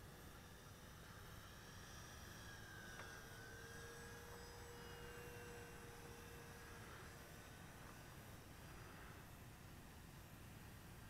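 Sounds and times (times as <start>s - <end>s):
distant model plane motor whine: 0.0s - 11.0s.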